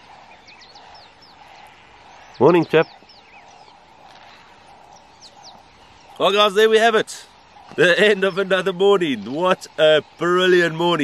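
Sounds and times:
birds whistling descending notes: 0.0s - 11.0s.

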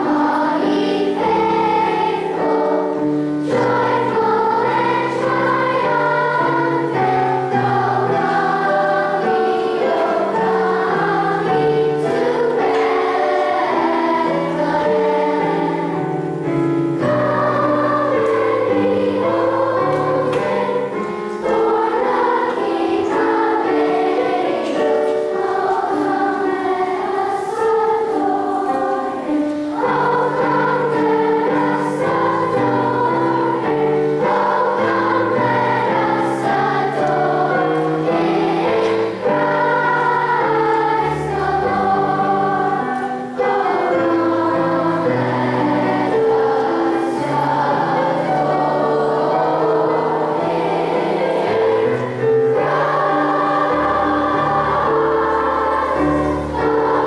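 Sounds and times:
children's choir singing: 0.0s - 57.0s
sustained accompaniment: 0.0s - 57.0s.

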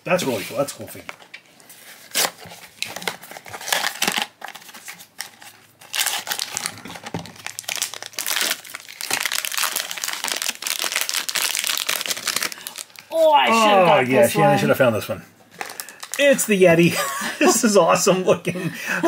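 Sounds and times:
foil bag crinkling: 2.1s - 13.1s, 15.5s - 16.5s.

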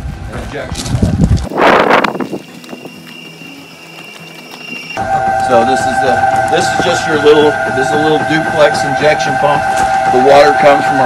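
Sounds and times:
footsteps crunching on gravel: 0.4s - 7.0s
high machine whine: 1.6s - 11.0s.

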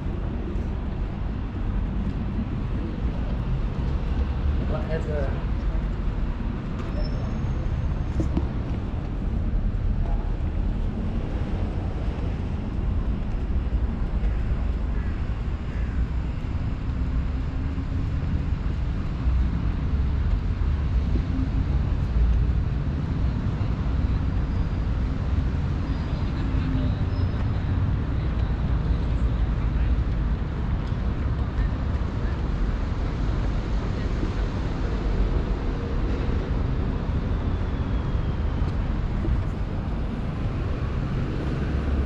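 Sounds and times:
distant road traffic: 0.0s - 42.0s.

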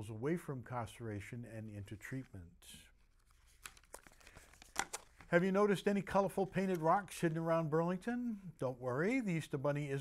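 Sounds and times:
soft paper crackles: 2.0s - 5.6s
paper rustling: 3.0s - 5.4s.

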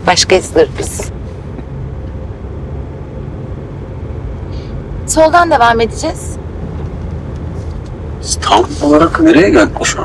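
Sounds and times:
car interior road rumble: 0.0s - 10.0s.

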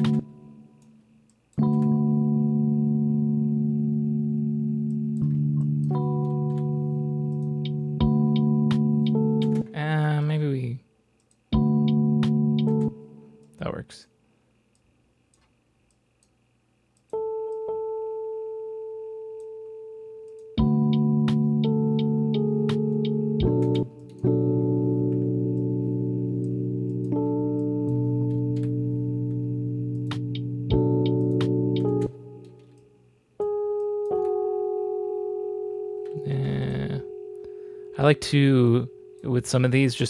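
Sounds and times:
electric piano melody and chords: 0.0s - 1.0s, 1.6s - 10.3s, 11.5s - 13.5s, 17.1s - 39.7s.

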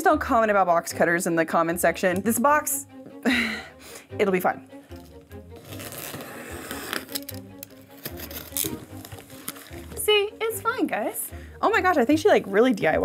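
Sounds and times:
background music: 0.0s - 13.0s
box cutter slicing packing tape: 5.6s - 9.9s
woman's voice: 10.0s - 13.0s.

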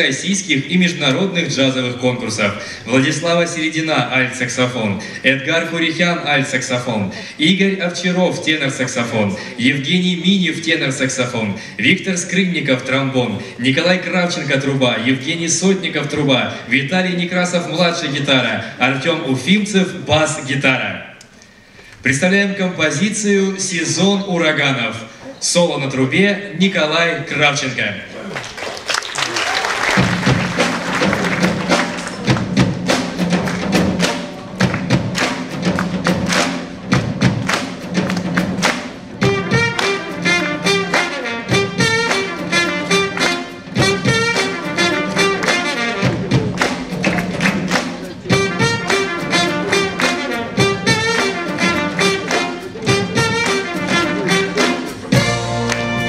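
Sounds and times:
drum kit groove: 29.8s - 56.0s
steady bass line: 37.0s - 56.0s
horn section riffs: 39.2s - 56.0s.

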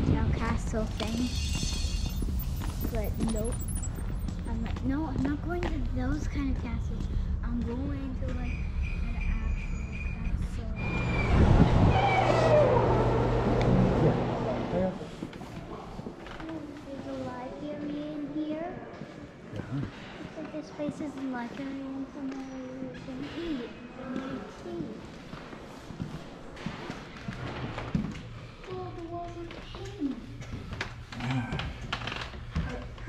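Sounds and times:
people talking indistinctly: 2.8s - 10.9s.

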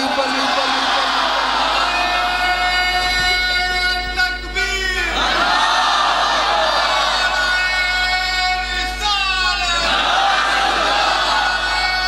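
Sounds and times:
audience chanting together: 5.2s - 7.4s, 9.8s - 11.6s.

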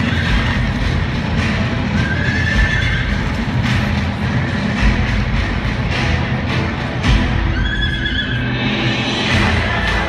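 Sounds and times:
music with heavy low pounding: 0.0s - 10.0s.

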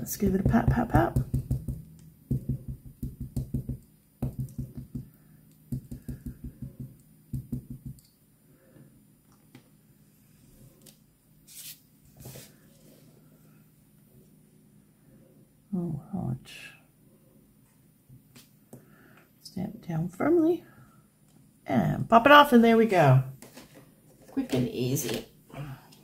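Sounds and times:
stamp tapping on ink pad: 0.2s - 5.1s, 5.7s - 8.0s.

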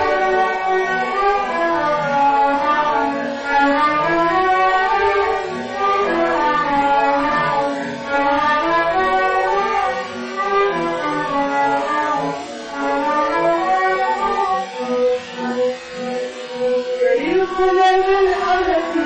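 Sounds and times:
bowed string section melody: 0.0s - 19.0s.

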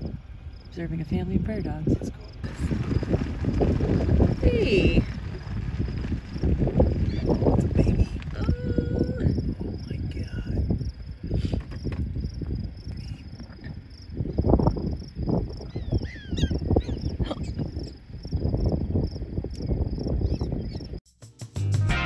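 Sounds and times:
wind buffeting microphone: 0.0s - 21.0s
high insect trill: 2.2s - 21.0s
music with a beat: 21.1s - 22.0s.

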